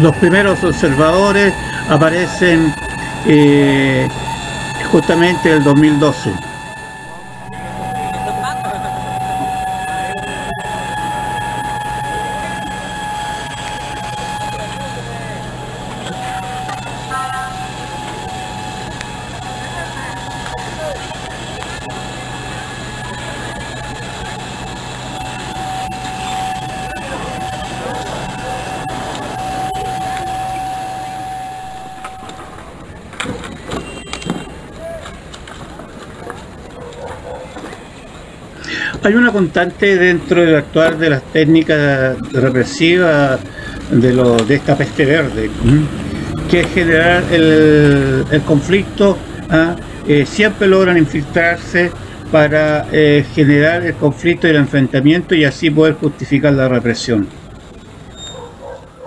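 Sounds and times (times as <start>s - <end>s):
mechanical hum: 0.0s - 59.0s
street noise: 0.0s - 59.0s.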